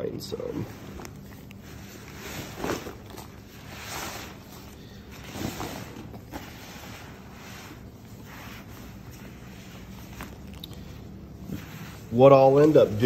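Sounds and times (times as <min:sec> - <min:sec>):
latex rubber rubbing swishes: 0:11.4 - 0:13.0.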